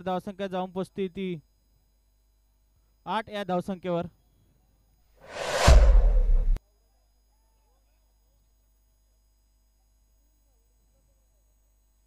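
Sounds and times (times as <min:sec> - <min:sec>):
deep bass rumble: 0:05.3 - 0:06.6
whoosh: 0:05.3 - 0:06.6.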